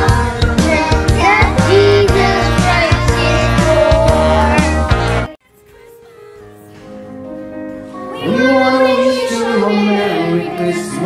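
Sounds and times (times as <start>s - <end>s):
children singing together: 0.0s - 5.3s, 8.1s - 11.0s
backing track music: 0.0s - 11.0s.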